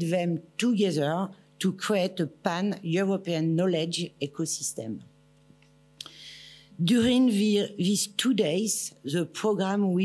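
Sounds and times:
woman speaking: 0.0s - 5.1s, 6.8s - 10.0s
electrical mains hum: 0.0s - 10.0s
breath into microphone: 6.0s - 6.8s.

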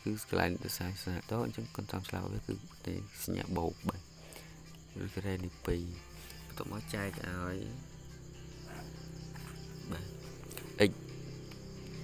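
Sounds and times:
low hum: 3.8s - 12.0s.

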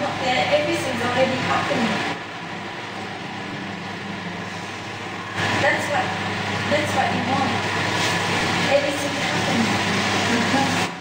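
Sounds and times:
electric fans whirring: 0.0s - 11.0s.

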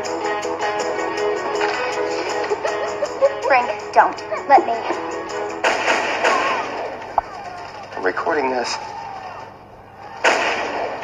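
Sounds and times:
gunshot with echo: 5.6s - 7.0s, 10.2s - 11.0s.

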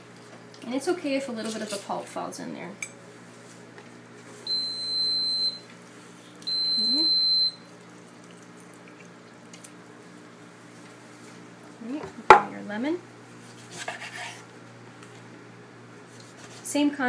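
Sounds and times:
low steady hum: 0.0s - 17.0s
high electronic beeps: 6.5s - 7.5s.

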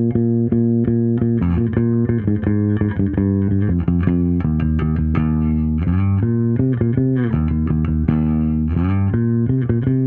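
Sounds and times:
electric bass guitar fingerstyle: 0.0s - 10.0s.

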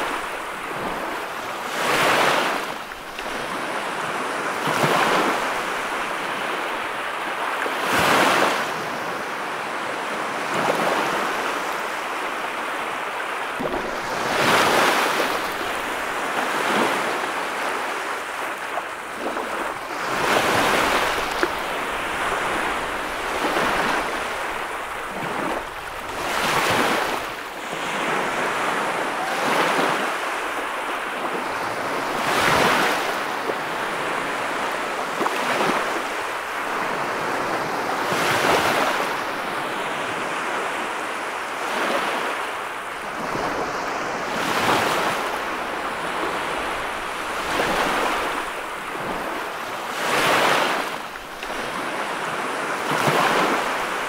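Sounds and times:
ocean surf washing up beach: 0.0s - 54.0s.

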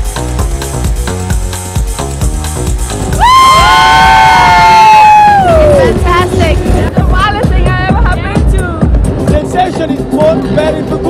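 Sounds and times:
people cheering: 3.1s - 6.0s.

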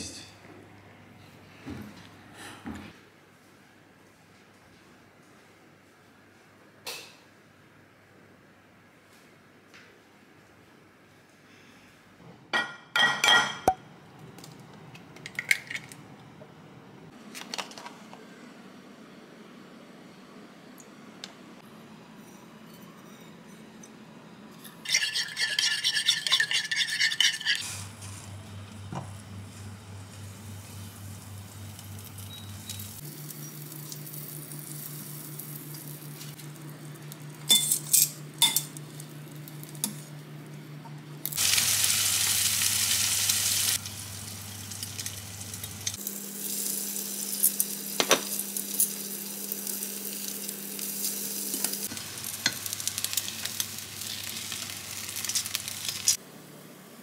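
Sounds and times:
bread sizzling in a pan: 27.4s - 36.6s, 41.4s - 56.2s.

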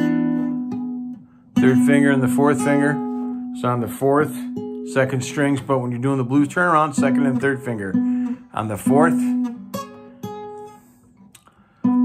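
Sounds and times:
acoustic guitar notes plucked: 0.0s - 12.0s.

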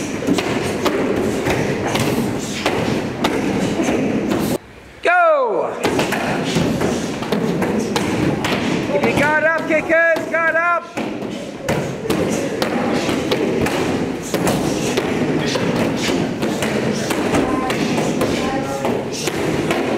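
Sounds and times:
hubbub of voices in a hall: 0.0s - 5.0s, 10.8s - 19.9s.

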